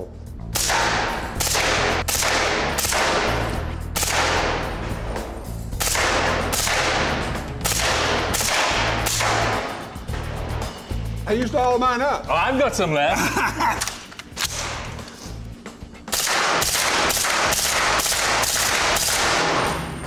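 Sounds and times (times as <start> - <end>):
suppressed rifle shots: 16.1 - 19.7.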